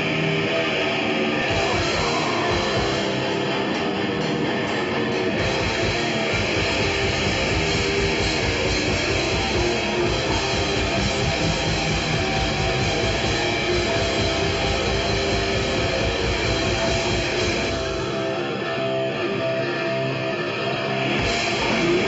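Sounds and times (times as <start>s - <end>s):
fast dense low rhythm: 0.0s - 18.5s
electric guitars: 0.0s - 22.0s
heavy metal band playing live: 0.0s - 22.0s.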